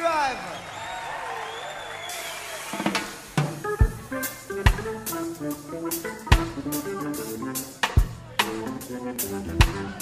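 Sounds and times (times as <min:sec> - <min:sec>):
reggae band playing live: 0:02.1 - 0:10.0.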